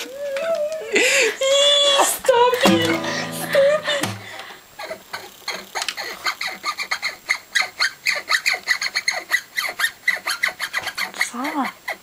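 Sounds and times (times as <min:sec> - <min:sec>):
rapid loud squeaks: 0:06.0 - 0:12.0.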